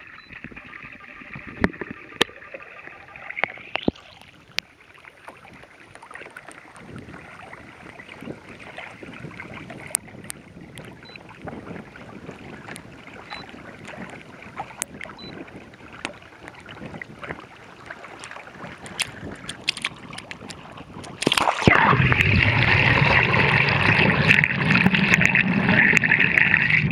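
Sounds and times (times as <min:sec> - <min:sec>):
sharp ticks and splashes: 0:00.0 - 0:26.9
water rushing along kayak hull: 0:03.3 - 0:26.9.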